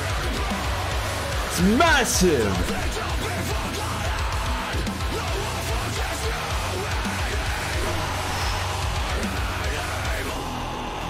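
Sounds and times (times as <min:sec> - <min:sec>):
heavy metal song: 0:00.0 - 0:11.0.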